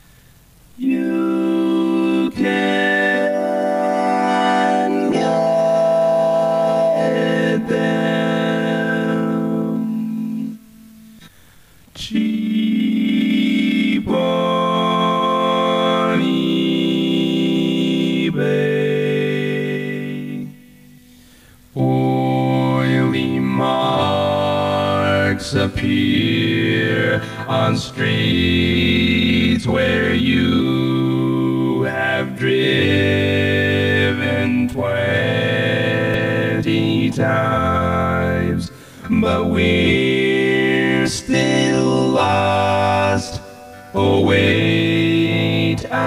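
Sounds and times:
vocoded voice singing chords: 0:00.0 - 0:46.0.

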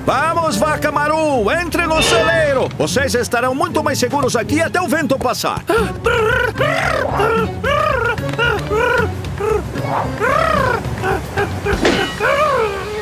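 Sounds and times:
background music: 0:00.0 - 0:13.0
cartoon parrot squawking: 0:09.8 - 0:10.8.

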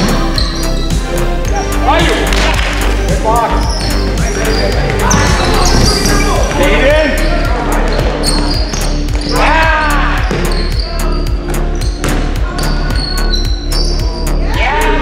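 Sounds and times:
sneaker squeaks: 0:00.0 - 0:02.1, 0:03.5 - 0:06.5, 0:07.1 - 0:09.6, 0:10.2 - 0:14.2
people shouting: 0:08.5 - 0:11.3, 0:12.3 - 0:15.0.

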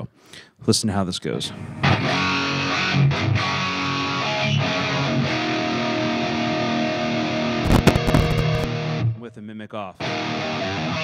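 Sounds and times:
distorted electric guitar chords: 0:01.6 - 0:09.2, 0:10.0 - 0:11.0.

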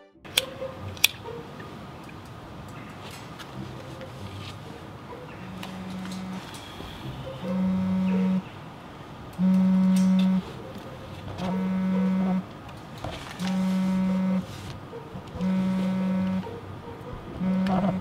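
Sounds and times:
telephone ringing buzz: 0:05.8 - 0:06.5, 0:07.5 - 0:08.4, 0:09.4 - 0:10.4, 0:11.5 - 0:12.4, 0:13.4 - 0:14.4, 0:15.4 - 0:16.5, 0:17.4 - 0:18.0.

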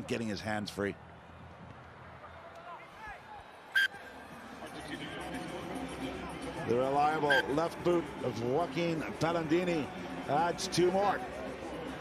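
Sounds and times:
crowd hubbub: 0:02.8 - 0:12.0.

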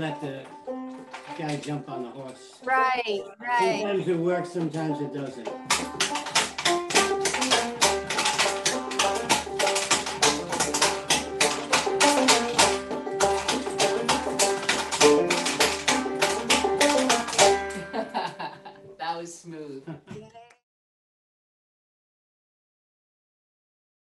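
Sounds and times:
banjo playing lively tune: 0:00.0 - 0:18.8
wooden dancing figures clattering: 0:00.4 - 0:01.7, 0:05.4 - 0:18.0.

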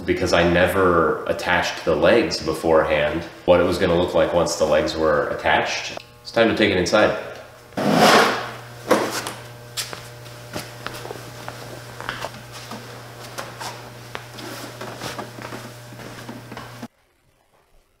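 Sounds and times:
steady low hum: 0:00.0 - 0:16.9.

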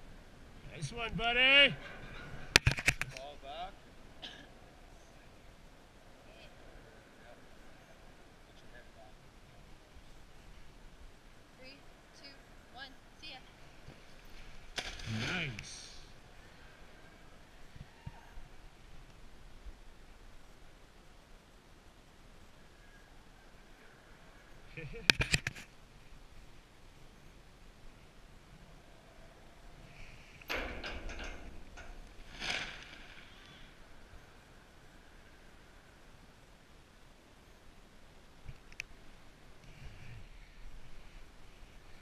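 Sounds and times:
short knocks and rustles: 0:30.3 - 0:33.7.

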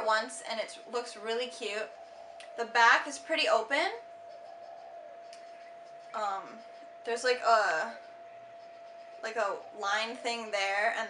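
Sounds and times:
thin high hum: 0:00.0 - 0:11.0.

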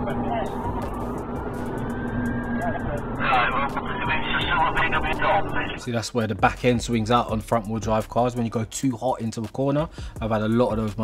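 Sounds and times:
car engine droning: 0:00.0 - 0:05.8
faint siren: 0:00.0 - 0:05.8
man's voice: 0:02.6 - 0:11.0.

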